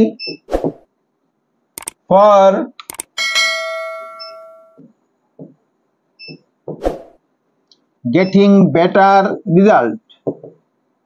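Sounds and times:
bell chime notification: 0:03.2 - 0:04.8.

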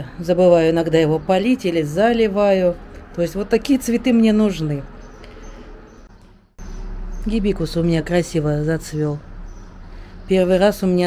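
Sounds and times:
low hum: 0:00.0 - 0:10.9.

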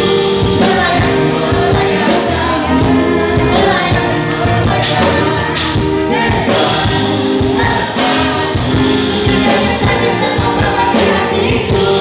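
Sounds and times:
group of voices singing: 0:00.0 - 0:12.0
live band playing pop song: 0:00.0 - 0:12.0.

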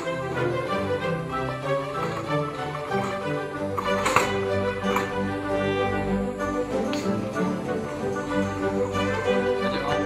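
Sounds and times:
music with sustained notes: 0:00.0 - 0:10.0.

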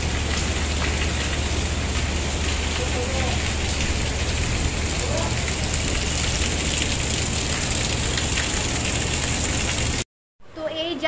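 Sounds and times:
heavy rain on pavement: 0:00.0 - 0:10.0.

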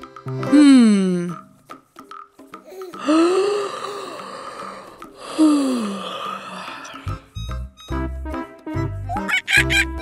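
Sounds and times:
person sighing: 0:00.5 - 0:01.3, 0:02.7 - 0:07.2.

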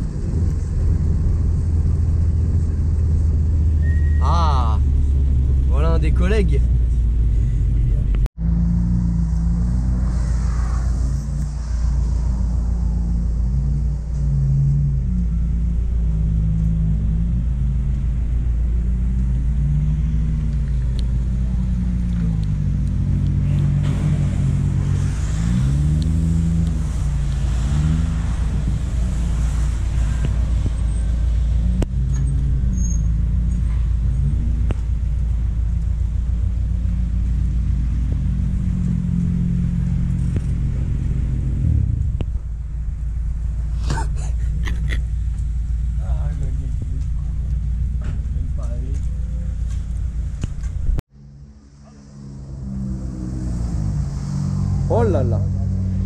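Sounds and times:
car engines rumbling at low revs: 0:00.0 - 0:56.0.

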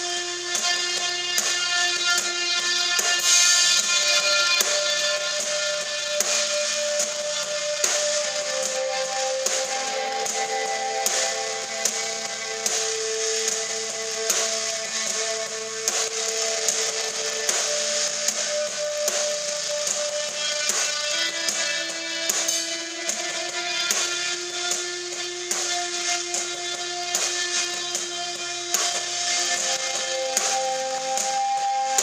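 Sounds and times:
drum kit steady beat: 0:00.0 - 0:32.0
electric guitar notes: 0:00.1 - 0:32.0.

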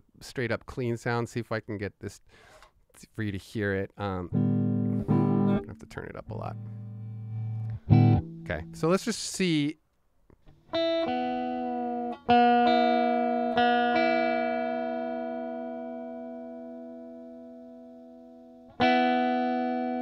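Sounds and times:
electric guitar strings ringing: 0:04.4 - 0:08.8.

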